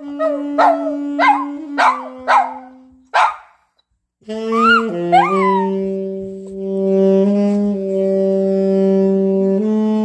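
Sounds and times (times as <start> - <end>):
saxophone long held notes: 0.0 - 3.1, 4.2 - 10.0.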